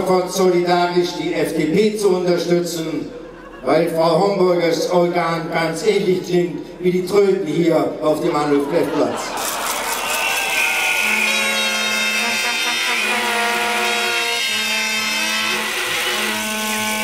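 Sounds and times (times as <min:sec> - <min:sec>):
crowd hubbub: 0:08.3 - 0:11.4
plastic horns blowing: 0:09.4 - 0:17.0
low horn blasts: 0:10.4 - 0:17.0.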